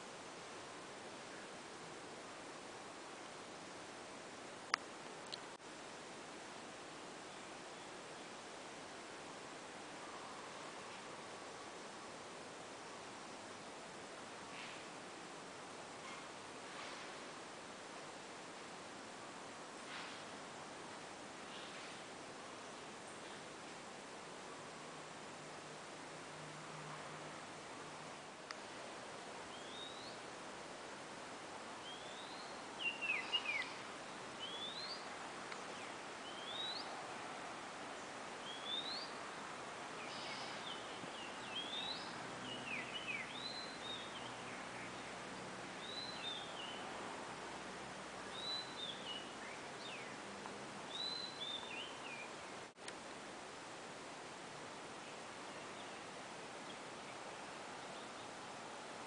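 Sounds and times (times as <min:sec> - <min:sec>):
outdoor hiss: 0:00.0 - 0:59.0
bird whistled calls: 0:31.8 - 0:33.8, 0:36.2 - 0:36.9, 0:38.4 - 0:39.1.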